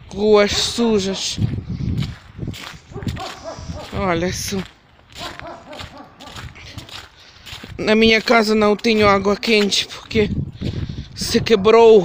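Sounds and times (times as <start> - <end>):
footsteps on wet snow and slush: 0.0 - 12.0.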